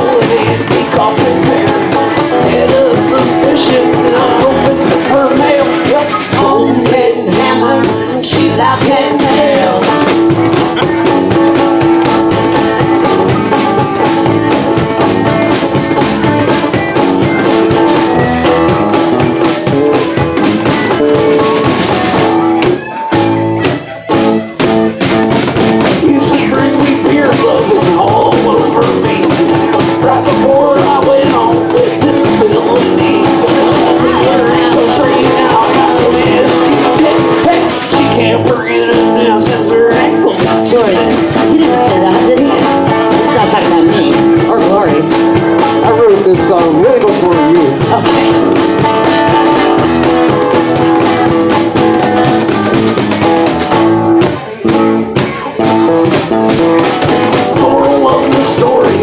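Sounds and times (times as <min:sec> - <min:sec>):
acoustic guitar: 0:00.0 - 0:59.0
bass guitar: 0:00.0 - 0:59.0
cajons keeping a beat: 0:00.0 - 0:59.0.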